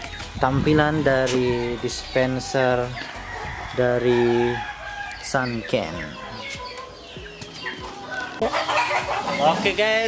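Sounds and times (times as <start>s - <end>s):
roosters clucking: 0.0s - 10.0s.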